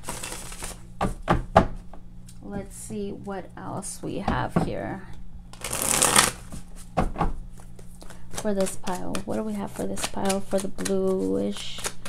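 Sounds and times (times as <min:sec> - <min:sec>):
cards being shuffled: 0:00.0 - 0:00.8, 0:05.5 - 0:06.9, 0:07.5 - 0:12.0.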